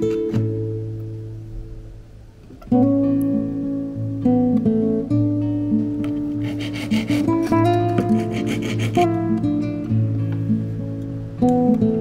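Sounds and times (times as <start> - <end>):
acoustic guitar music: 0.0 - 12.0
file rasping on metal: 6.4 - 9.3.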